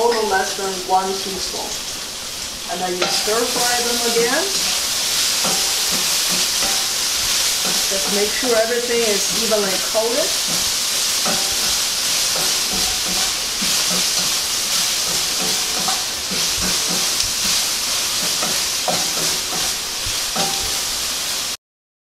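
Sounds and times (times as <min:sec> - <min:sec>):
vegetables sizzling in hot oil: 0:00.0 - 0:21.6
wooden spatula scraping pan: 0:03.0 - 0:21.0.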